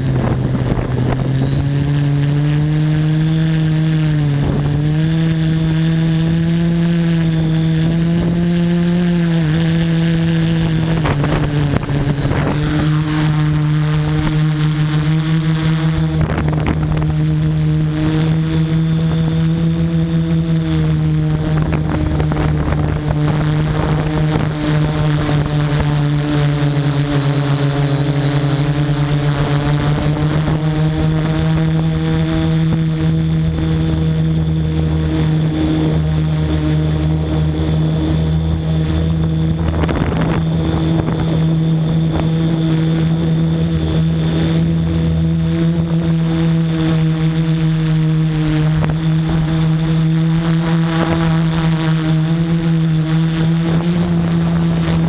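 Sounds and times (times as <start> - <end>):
drone motors humming: 0.0 - 55.0.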